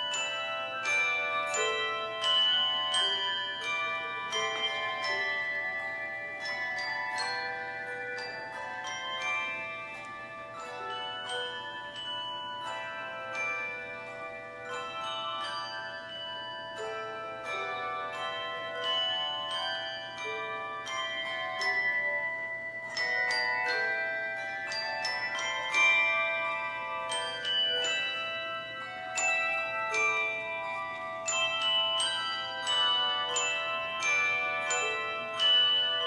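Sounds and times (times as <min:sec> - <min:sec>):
handbell choir ringing: 0:00.0 - 0:36.0.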